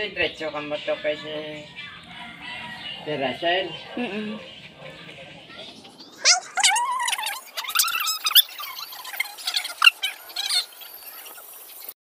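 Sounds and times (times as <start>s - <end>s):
puppy whining: 6.2s - 10.0s.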